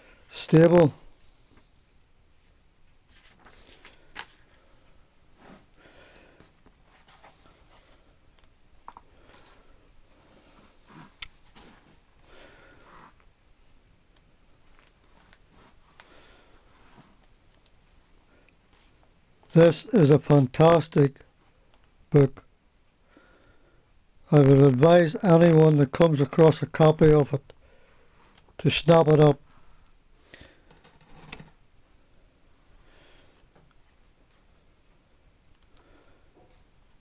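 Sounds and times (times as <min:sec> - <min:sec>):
light clicks of book pages: 0:03.1 - 0:04.8
paper rustle: 0:03.1 - 0:04.8.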